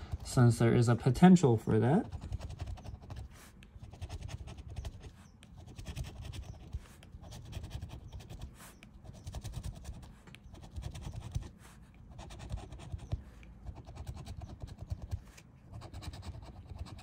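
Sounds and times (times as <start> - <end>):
scratching scratch-off ticket: 0.0 - 17.0.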